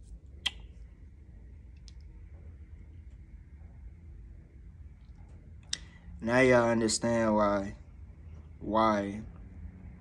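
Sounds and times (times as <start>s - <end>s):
low room hum: 0.0s - 10.0s
mouth click: 0.4s - 0.8s.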